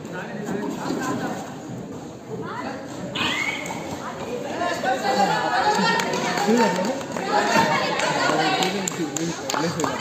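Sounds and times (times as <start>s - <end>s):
voices talking and calling out: 2.4s - 10.0s.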